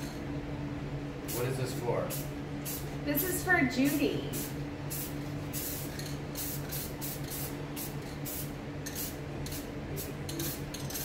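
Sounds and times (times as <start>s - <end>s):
steady low hum: 0.0s - 11.0s
spray paint can hissing: 4.4s - 11.0s.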